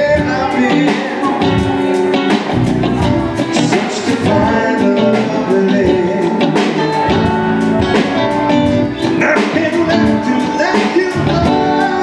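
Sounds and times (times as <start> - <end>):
drum kit steady beat: 0.0 - 12.0
electric guitar: 0.0 - 12.0
keyboard: 0.0 - 12.0.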